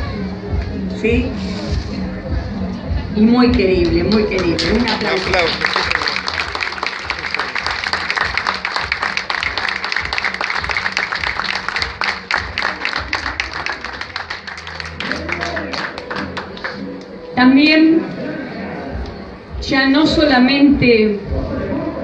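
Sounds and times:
audience applauding: 0:03.8 - 0:17.1.

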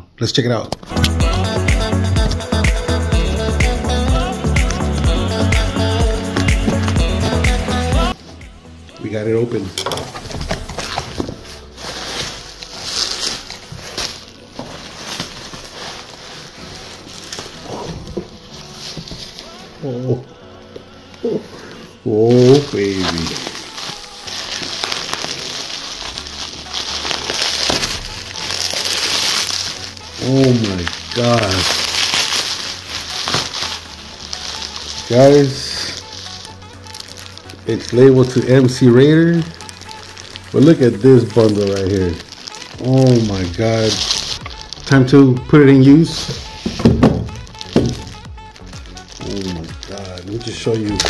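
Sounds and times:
plastic bag crinkling: 0:09.0 - 0:51.0.

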